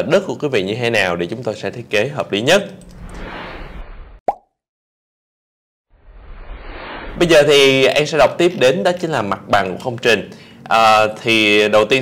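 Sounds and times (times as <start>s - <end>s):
pitched plop sound effect: 4.3s - 4.5s
steady room hiss: 7.2s - 12.0s.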